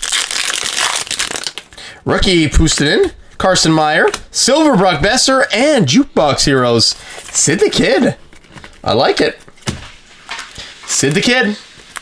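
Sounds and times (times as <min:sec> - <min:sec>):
foil wrapper tearing and crinkling: 0:00.0 - 0:01.8.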